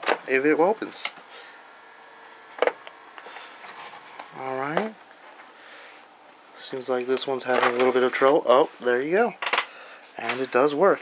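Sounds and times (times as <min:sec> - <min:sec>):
disc drive low hum: 0:00.0 - 0:06.2.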